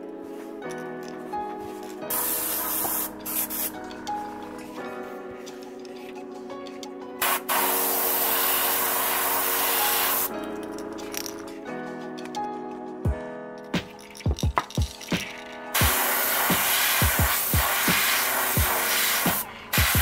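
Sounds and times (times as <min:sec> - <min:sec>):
background music: 0:00.0 - 0:20.0
airbrush spraying paint: 0:02.0 - 0:04.4, 0:07.2 - 0:10.3, 0:15.3 - 0:20.0.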